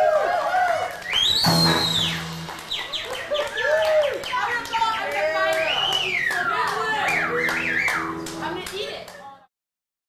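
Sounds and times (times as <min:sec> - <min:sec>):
drums: 0:01.0 - 0:03.8
surf rock band playing: 0:01.3 - 0:03.3, 0:06.8 - 0:08.8.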